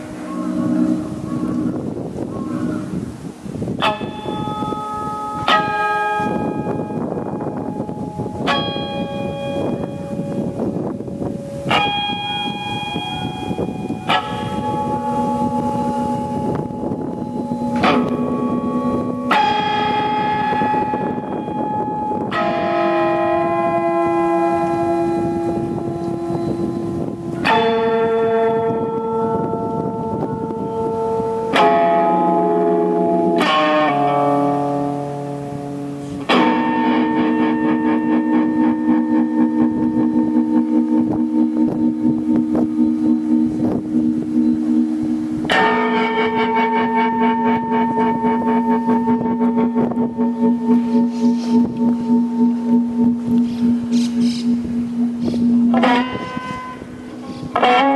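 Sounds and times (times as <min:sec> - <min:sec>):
electric guitar chords ringing: 0:00.0 - 0:57.9.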